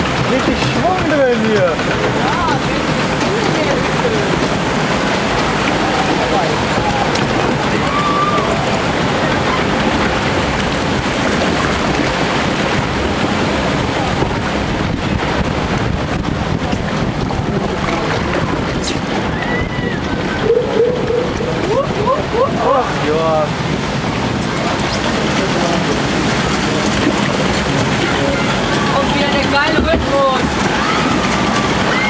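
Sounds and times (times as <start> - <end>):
water rushing and churning: 0.0 - 32.0
wind buffeting microphone: 0.0 - 32.0.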